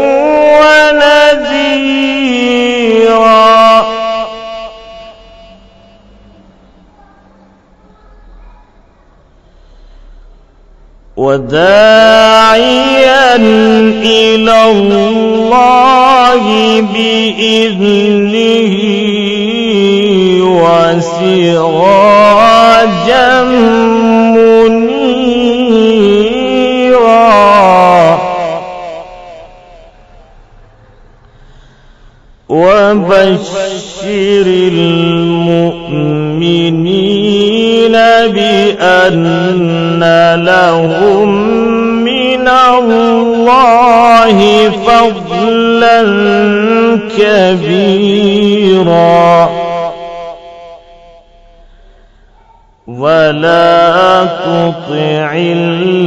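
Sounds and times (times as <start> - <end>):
man reciting with echo: 0.0 - 7.2, 9.3 - 30.7, 31.4 - 56.0.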